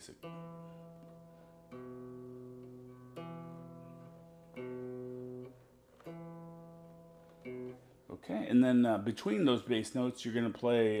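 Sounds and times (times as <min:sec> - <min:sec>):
fingerpicked electric guitar bass notes: 0:00.0 - 0:08.9.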